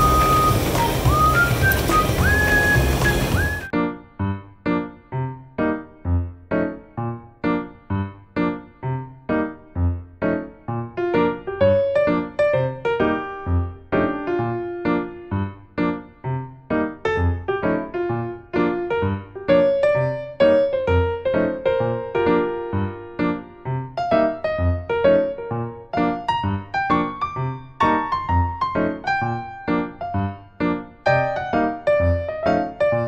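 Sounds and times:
piano-like keyboard music: 0:00.0 - 0:33.0.

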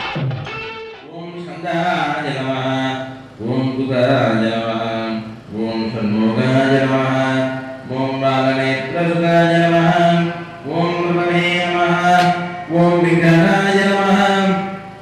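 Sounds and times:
man chanting: 0:01.1 - 0:15.0.

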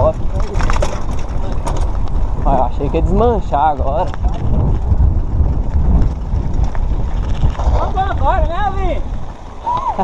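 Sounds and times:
bike knocking on rough track: 0:00.0 - 0:10.0
tyre noise on dirt: 0:00.0 - 0:10.0
wind buffeting microphone: 0:00.0 - 0:10.0.

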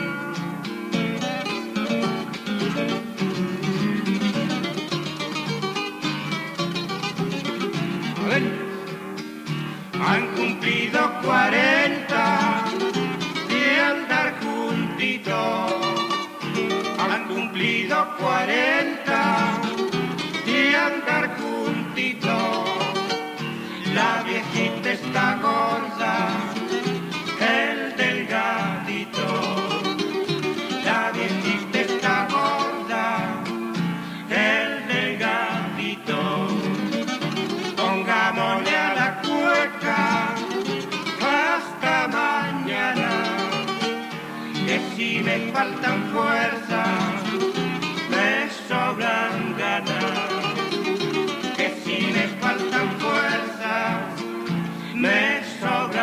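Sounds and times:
acoustic guitars playing: 0:00.0 - 0:56.0.

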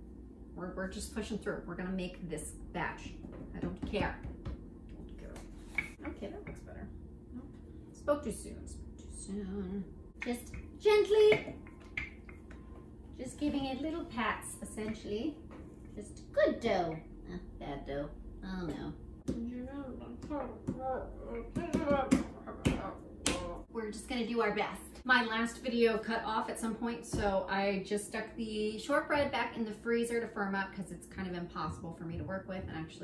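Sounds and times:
rolling pin knocking on board: 0:03.2 - 0:04.7
woman humming: 0:09.0 - 0:09.9.

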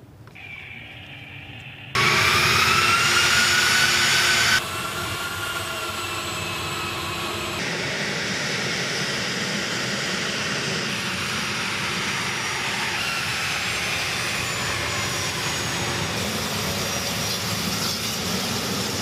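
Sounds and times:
jet engines whining: 0:00.2 - 0:19.0.

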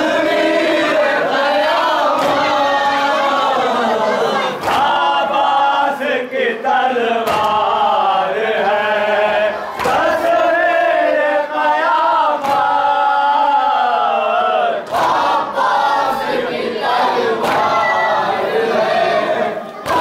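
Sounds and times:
men chanting in unison: 0:00.0 - 0:20.0
hands slapping chests: 0:02.0 - 0:02.6, 0:04.6 - 0:05.0, 0:07.2 - 0:07.7, 0:09.8 - 0:10.3, 0:12.4 - 0:12.9, 0:17.4 - 0:17.8, 0:19.8 - 0:20.0.

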